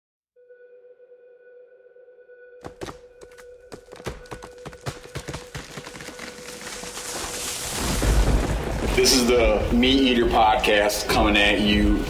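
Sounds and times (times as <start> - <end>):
steady sonar-like tone: 0.4 - 3.7.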